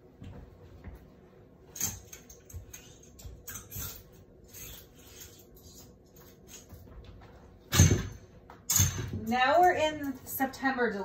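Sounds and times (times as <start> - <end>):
hangers clattering on metal rail: 1.7 - 6.7, 7.7 - 10.4.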